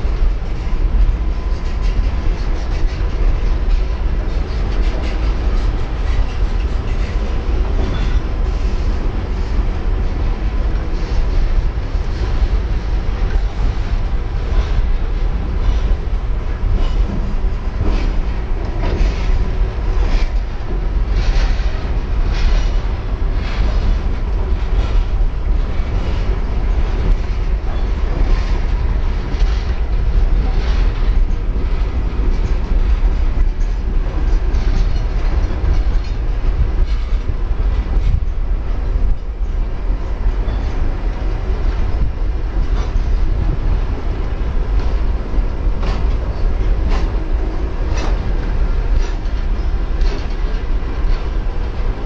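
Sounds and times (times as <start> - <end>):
freight train rumbling past: 0.0 - 52.0.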